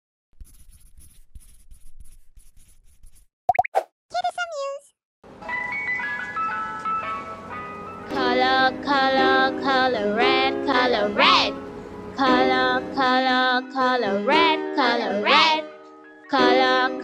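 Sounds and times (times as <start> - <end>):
chiming ice-cream-van melody: 5.3 - 9.8.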